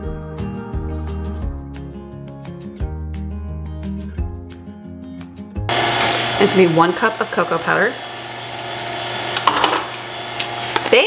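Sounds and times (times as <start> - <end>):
electric mixer running: 5.7 - 11.0.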